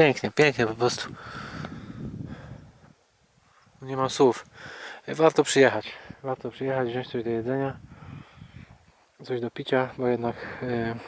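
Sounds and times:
wind buffeting microphone: 0.8s - 3.8s, 6.9s - 8.9s.

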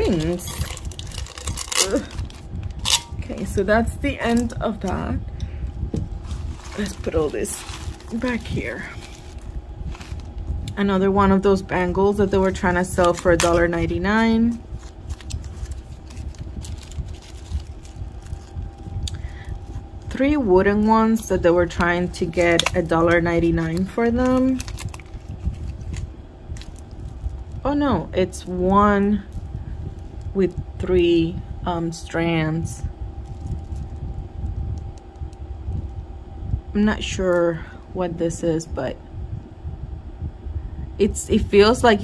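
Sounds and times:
jewelry clicking and rustling: 0.0s - 3.2s
handling noise rumble: 0.0s - 37.3s
low steady hum: 0.0s - 42.0s.

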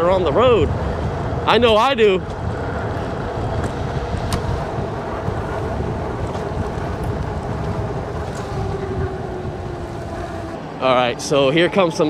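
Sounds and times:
tyre and road noise: 0.0s - 12.0s
wind rushing over microphone: 0.0s - 12.0s.

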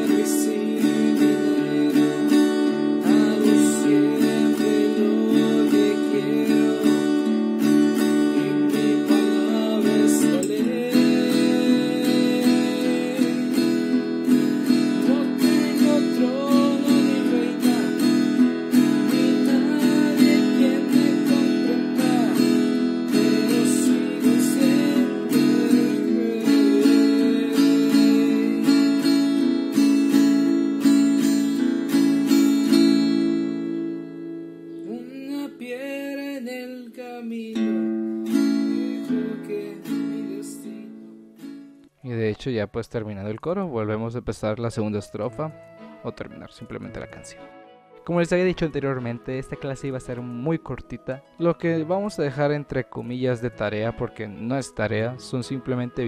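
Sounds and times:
acoustic guitar strumming: 0.0s - 42.0s, 45.2s - 56.0s.

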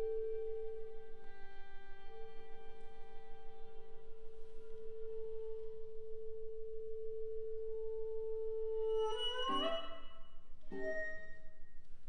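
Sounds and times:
steady pure tone: 0.0s - 12.0s.

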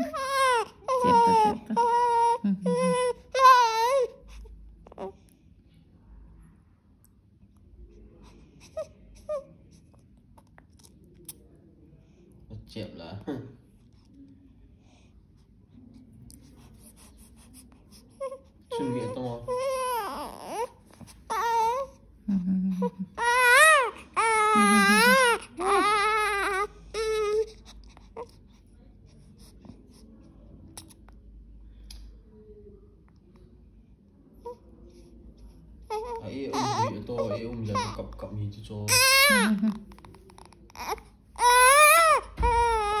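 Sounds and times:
newborn baby crying: 0.0s - 5.2s, 18.1s - 22.0s, 22.8s - 27.6s, 35.9s - 43.0s.

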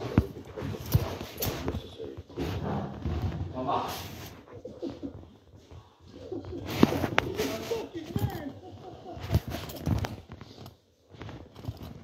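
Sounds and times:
low voices talking: 3.4s - 9.8s.

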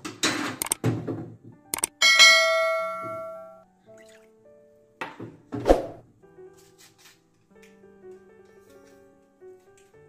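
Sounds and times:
bright bell ding: 2.0s - 3.6s.

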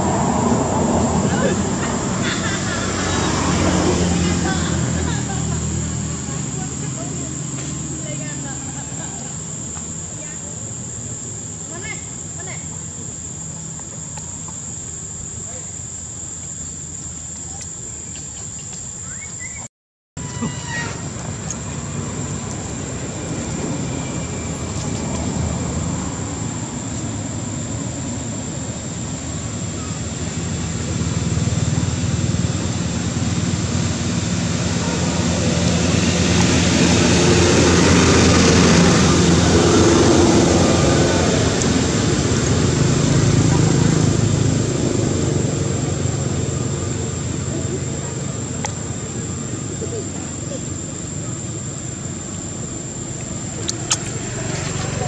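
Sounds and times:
motor vehicle passing: 0.0s - 19.6s, 20.2s - 55.0s.

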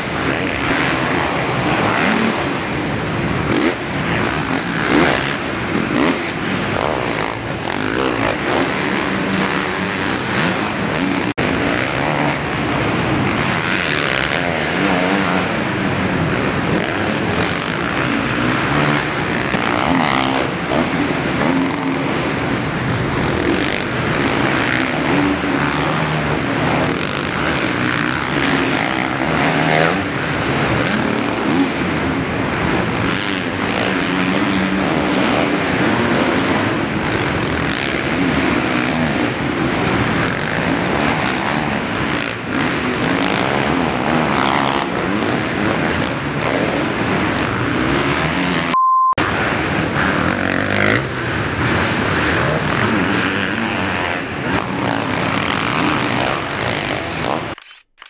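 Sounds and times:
motocross bike engines revving: 0.0s - 57.6s.

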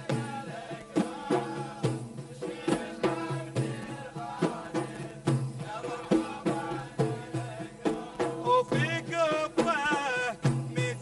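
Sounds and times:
frame drums beating: 0.0s - 11.0s
men singing folk song: 0.0s - 11.0s
small hand drum: 0.0s - 11.0s.

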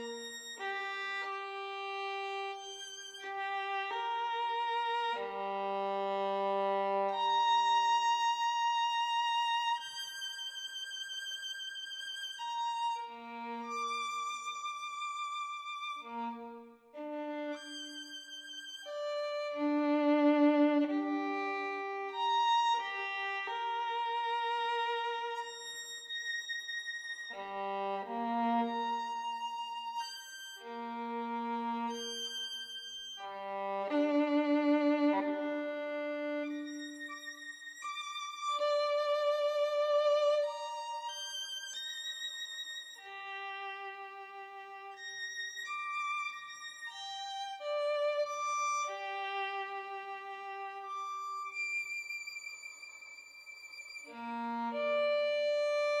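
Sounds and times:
solo violin melody: 0.0s - 56.0s.

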